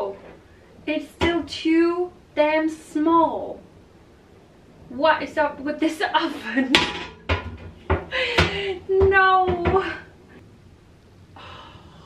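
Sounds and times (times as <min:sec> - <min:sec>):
metal oven tray clattering: 0:06.6 - 0:08.0.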